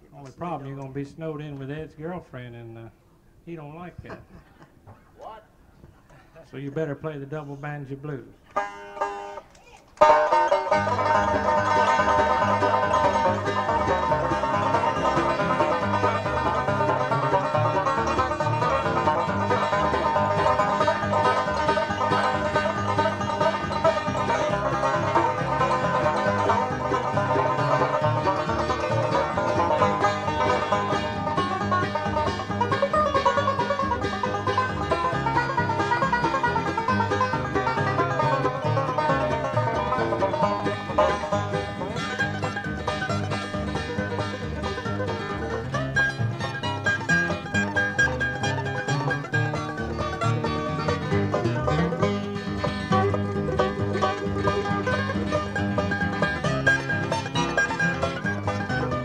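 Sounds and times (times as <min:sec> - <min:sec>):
banjo picking lead: 0:00.0 - 0:05.0, 0:06.4 - 0:59.0
bass and guitar backing: 0:00.0 - 0:59.0.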